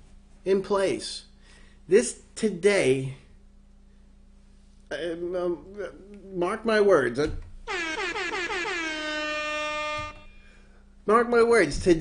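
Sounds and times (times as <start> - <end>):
air horn blast: 7.6 - 10.7.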